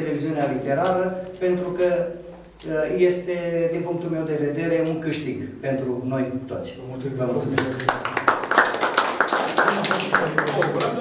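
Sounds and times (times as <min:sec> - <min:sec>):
audience applauding: 0:07.5 - 0:11.0.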